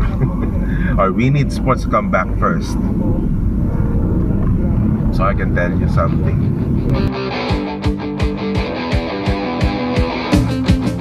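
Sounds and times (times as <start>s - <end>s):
road noise inside car: 0.0s - 7.1s
car engine rumble: 0.0s - 7.8s.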